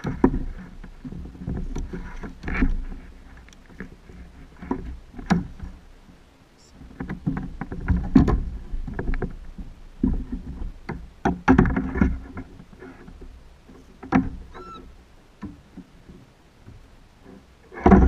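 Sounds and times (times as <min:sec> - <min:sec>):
gear knocking on a kayak: 0:06.9 - 0:13.3
brief squeak: 0:14.5 - 0:14.9.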